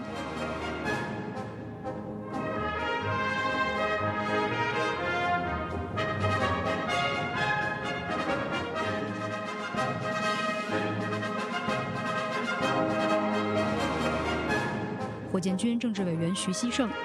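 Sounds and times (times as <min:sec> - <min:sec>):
military brass band playing: 0:00.0 - 0:15.3.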